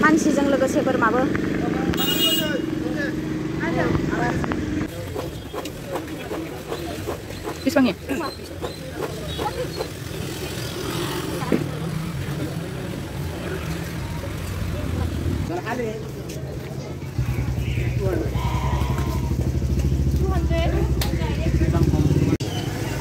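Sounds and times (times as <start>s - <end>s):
people talking: 0.0s - 19.3s, 20.1s - 22.4s
vehicle engine running: 17.0s - 23.0s.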